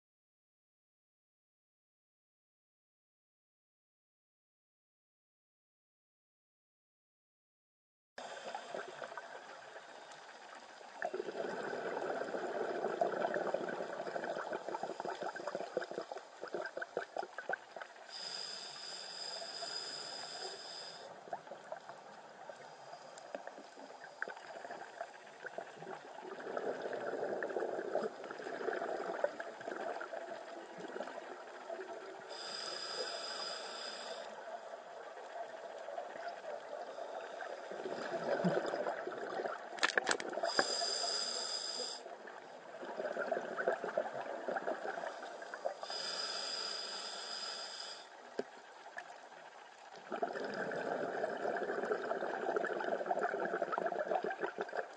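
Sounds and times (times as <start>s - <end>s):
exhaled air bubbling: 8.4s - 54.9s
regulator inhalation hissing whine: 32.3s - 34.3s, 40.5s - 42.0s, 45.8s - 48.1s.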